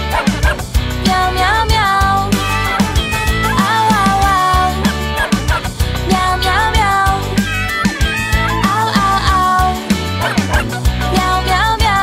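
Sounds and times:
children's song instrumental: 0.0 - 12.0
cartoon dog barks: 10.2 - 10.9.

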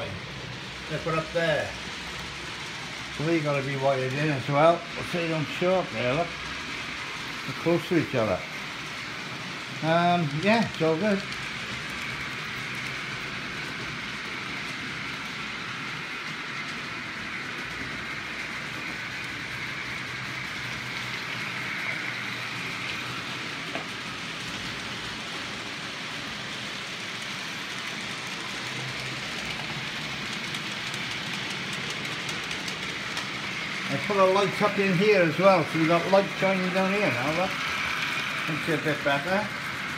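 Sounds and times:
model trains whirring on rails: 0.0 - 39.9.

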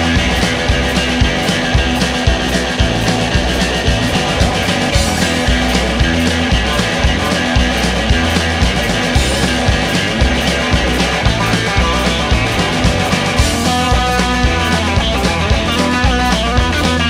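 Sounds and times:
drum kit beat: 0.0 - 17.0
electric bass notes: 0.0 - 17.0
live rock band playing: 0.0 - 17.0.

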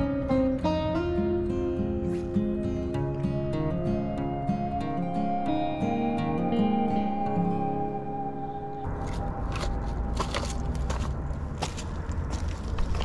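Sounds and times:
soft acoustic guitar music: 0.0 - 8.9.

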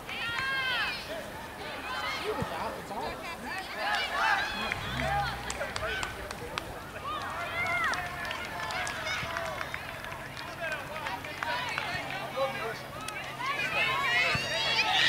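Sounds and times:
girls calling and shouting: 0.0 - 6.2, 11.5 - 15.0.

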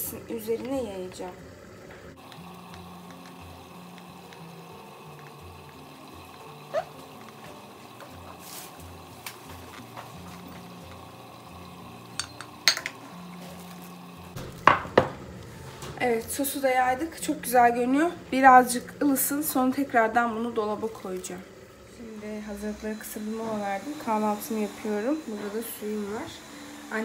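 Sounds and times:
metal clinking on pot and glass: 12.2 - 13.0.

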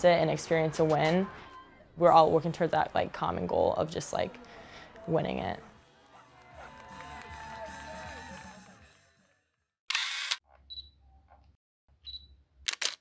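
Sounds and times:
background music: 0.0 - 9.6.

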